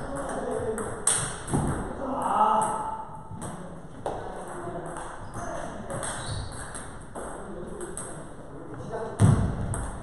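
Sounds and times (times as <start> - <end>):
table tennis ball bouncing: 0.0 - 8.3, 9.2 - 10.0.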